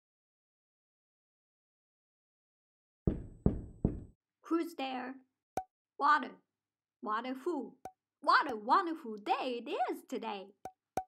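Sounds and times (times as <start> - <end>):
knuckle knocks on door: 3.1 - 4.1.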